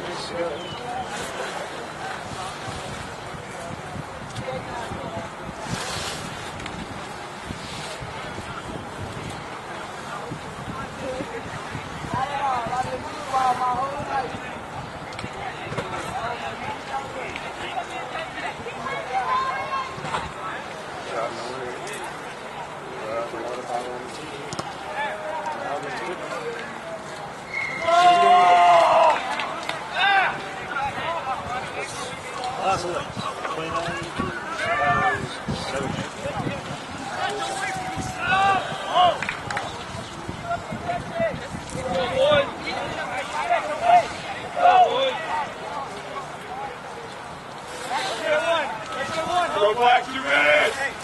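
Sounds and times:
players shouting and calling: 11.0 - 23.1, 24.3 - 51.0.

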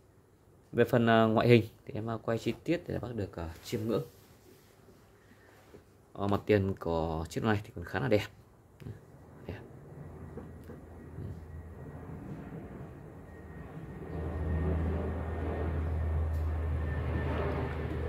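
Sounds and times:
low rumbling noise: 8.7 - 18.0.

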